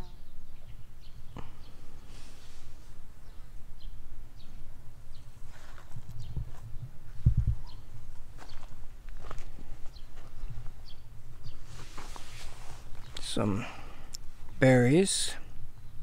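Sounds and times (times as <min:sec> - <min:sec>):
low microphone rumble: 0:00.0 - 0:14.6
plants rustling: 0:05.2 - 0:06.7, 0:08.1 - 0:14.6
footsteps on garden path: 0:05.4 - 0:13.9.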